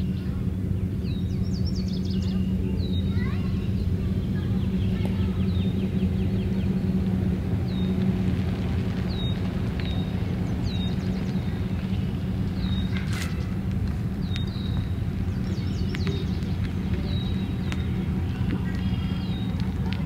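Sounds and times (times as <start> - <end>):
birds chirping: 0.0 - 20.0
truck engine running: 0.0 - 20.0.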